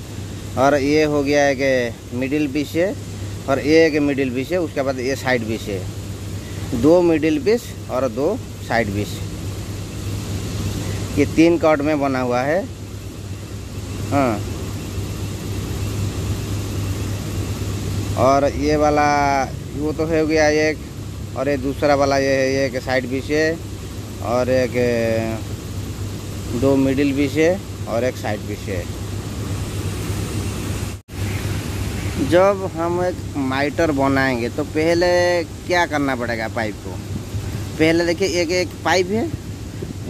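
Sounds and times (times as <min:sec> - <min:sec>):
even hiss: 0:00.0 - 0:40.0
low mechanical hum: 0:00.0 - 0:40.0.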